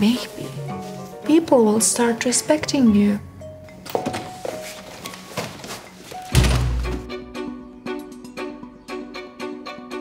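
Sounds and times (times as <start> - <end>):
background music with plucked notes: 0.0 - 10.0
door slamming shut: 6.3 - 7.1.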